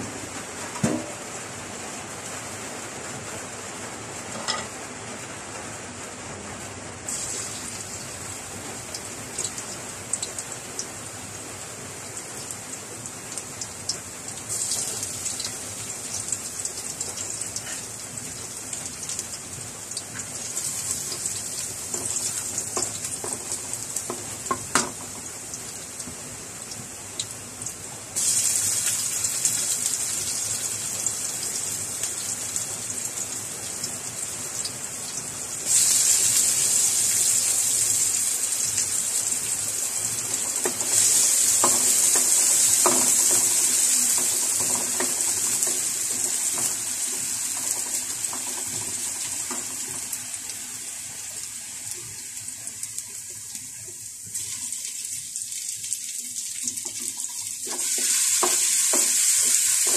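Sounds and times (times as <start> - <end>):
garlic sizzling in hot oil: 7.1 - 59.9.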